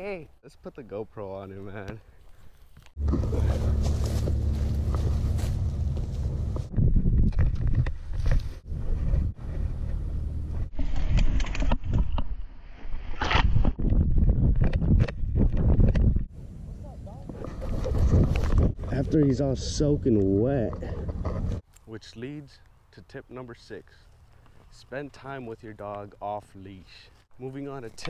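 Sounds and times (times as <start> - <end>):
low rumble: 3.0 - 10.7
wind buffeting camera: 3.4 - 21.6.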